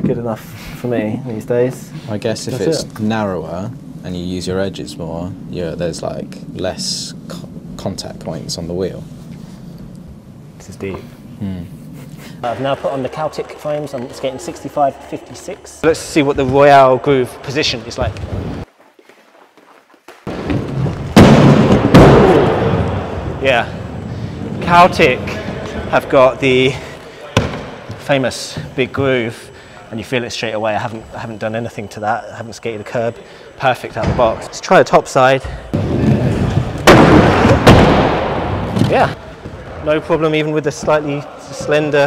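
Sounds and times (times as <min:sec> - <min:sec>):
inline skate wheels rolling: 0:12.2 - 0:29.4, 0:35.4 - 0:42.0
inline skates rolling on wood: 0:12.4 - 0:16.8, 0:17.5 - 0:21.2, 0:35.6 - 0:37.8.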